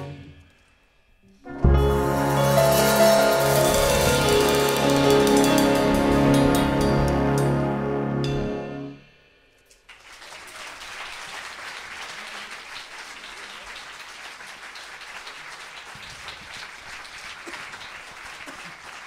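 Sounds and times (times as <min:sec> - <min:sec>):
big band chord: 0:01.5 - 0:09.2
audience applause: 0:09.9 - 0:19.0.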